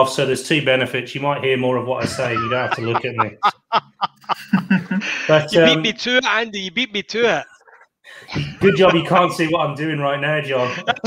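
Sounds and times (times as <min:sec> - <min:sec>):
man chuckling: 0:02.0 - 0:06.0, 0:08.3 - 0:09.4, 0:10.6 - 0:11.0.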